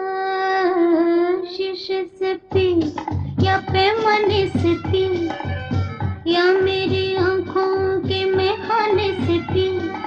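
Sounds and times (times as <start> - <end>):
woman singing: 0.0 - 5.5, 6.2 - 10.0
bass and drum beat: 2.5 - 10.0.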